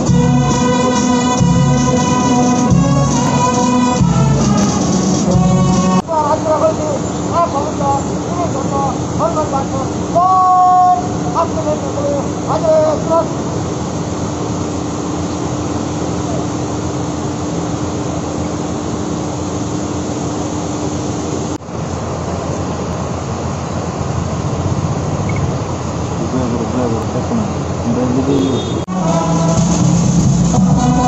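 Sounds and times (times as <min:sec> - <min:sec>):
brass band playing: 0:00.0 - 0:06.1, 0:28.5 - 0:31.0
low hum: 0:00.0 - 0:27.8
outdoor rushing noise: 0:00.0 - 0:31.0.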